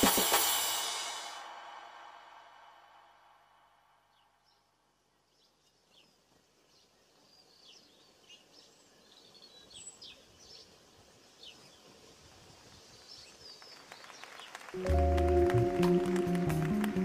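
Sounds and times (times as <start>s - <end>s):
low hiss: 0.0s - 17.0s
music with stepping bass line: 14.8s - 17.0s.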